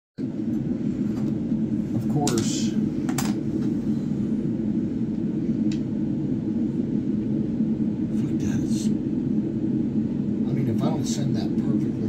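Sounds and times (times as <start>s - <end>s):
low background rumble: 0.2s - 12.0s.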